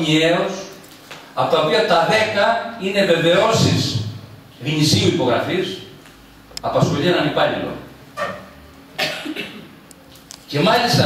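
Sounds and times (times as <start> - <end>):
person coughing: 9.0 - 9.8.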